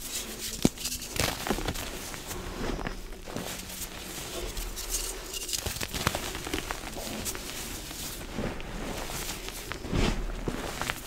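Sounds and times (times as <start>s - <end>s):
hands crushing powdery chalk: 0.0s - 11.0s.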